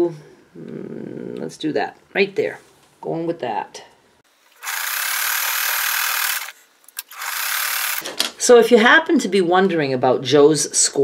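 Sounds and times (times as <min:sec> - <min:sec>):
sewing machine running: 0:04.6 - 0:08.0.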